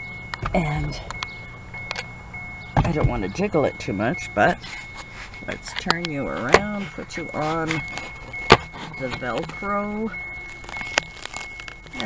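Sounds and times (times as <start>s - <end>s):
rubbing and scraping: 6.4s - 9.6s.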